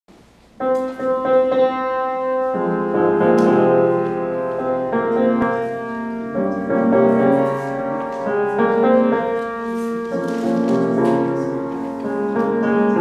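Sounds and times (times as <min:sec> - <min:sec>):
piano chords: 0:00.5 - 0:13.0.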